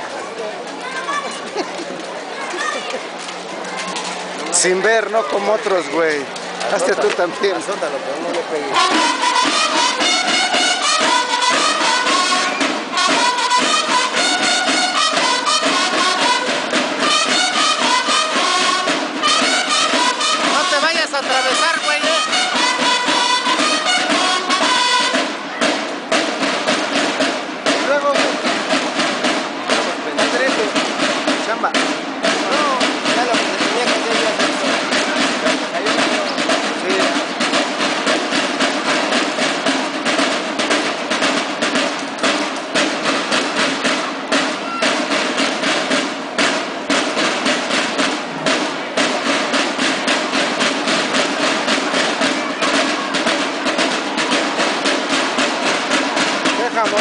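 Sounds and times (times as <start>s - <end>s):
snare drums marching cadence: 0.0s - 57.0s
bugles playing brass phrase: 8.7s - 39.5s, 42.3s - 57.0s.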